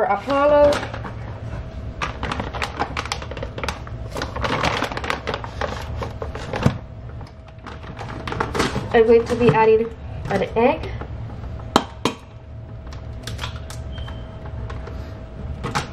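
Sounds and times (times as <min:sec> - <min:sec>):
packaging crinkling and clicking: 0:02.0 - 0:09.5, 0:12.8 - 0:14.9.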